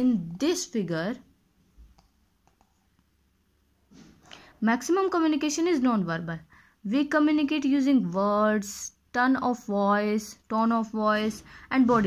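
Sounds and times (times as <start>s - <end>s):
person speaking: 0.0s - 1.3s, 4.6s - 12.0s.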